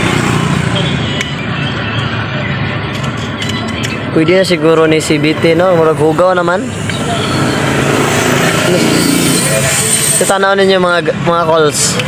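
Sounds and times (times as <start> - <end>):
low rumble of motor vehicles: 0.0 - 12.0.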